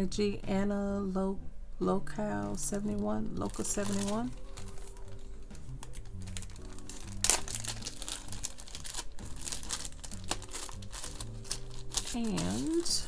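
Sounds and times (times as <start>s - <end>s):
soft background music: 0.0s - 13.0s
plastic card sleeve crinkling: 2.4s - 13.0s.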